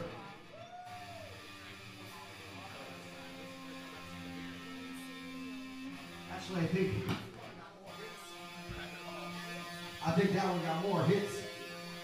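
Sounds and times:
electric guitar notes: 0:00.0 - 0:12.0.

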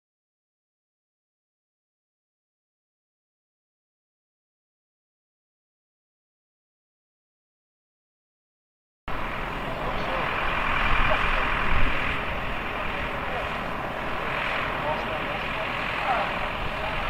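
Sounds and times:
truck diesel engine running: 0:09.1 - 0:17.0
faint voices: 0:09.2 - 0:17.0.

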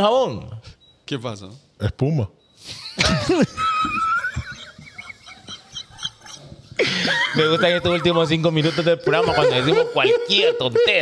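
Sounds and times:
men laughing hard: 0:02.7 - 0:11.0.

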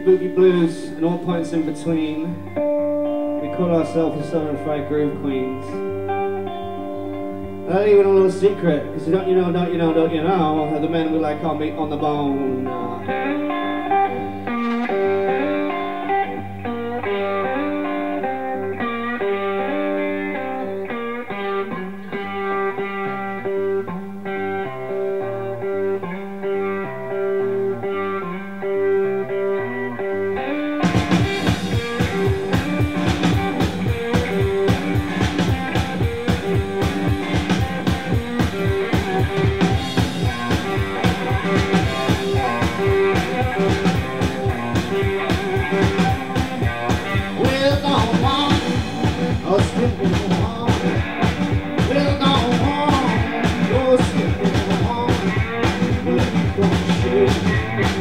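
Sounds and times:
electric guitar riff: 0:00.0 - 0:58.0
drum kit beat: 0:30.8 - 0:58.0.

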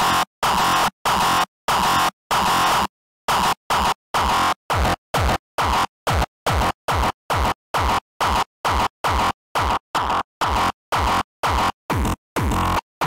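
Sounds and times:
distorted kick drum: 0:04.7 - 0:12.9.

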